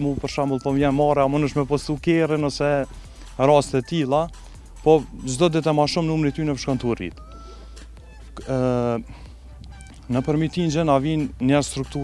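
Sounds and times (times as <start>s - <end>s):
man speaking: 0.0s - 7.2s, 8.3s - 9.1s, 9.8s - 12.0s.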